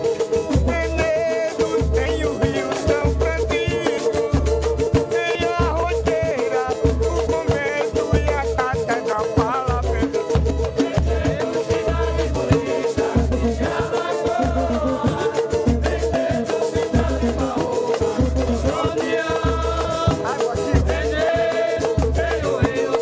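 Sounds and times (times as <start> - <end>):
acoustic guitar: 0.0 - 23.0
cavaquinho: 0.0 - 23.0
pandeiro: 0.0 - 23.0
voices singing: 0.0 - 23.0.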